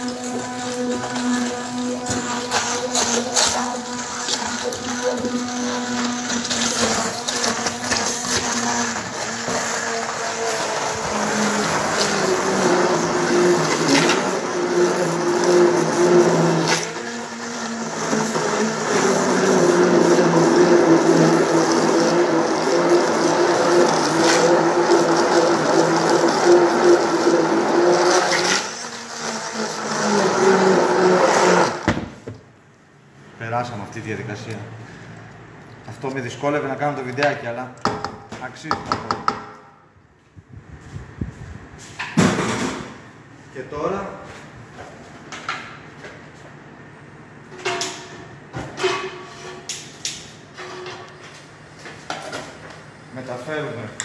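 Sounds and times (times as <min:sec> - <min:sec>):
immersion blender motor hum: 0:00.0 - 0:31.9.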